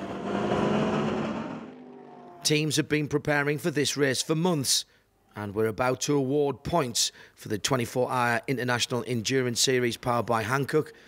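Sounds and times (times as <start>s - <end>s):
racing car engine passing by: 0.0s - 2.5s.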